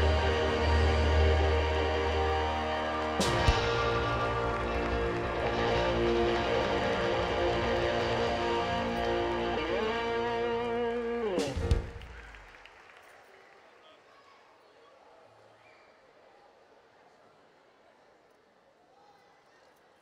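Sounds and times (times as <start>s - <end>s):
electric guitar chord: 0.0s - 11.9s
live band: 0.0s - 12.2s.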